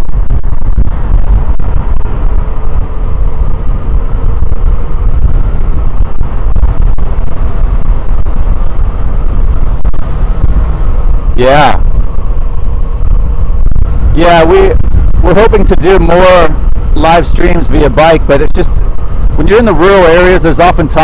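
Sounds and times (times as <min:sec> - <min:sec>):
motorcycle engine rumble: 0:00.0 - 0:21.0
wind buffeting microphone: 0:00.0 - 0:21.0.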